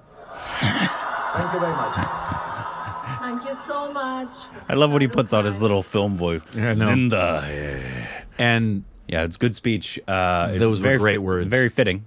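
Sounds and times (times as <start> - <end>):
auditorium crowd noise: 0.0 - 3.8
man chuckling: 0.4 - 3.2.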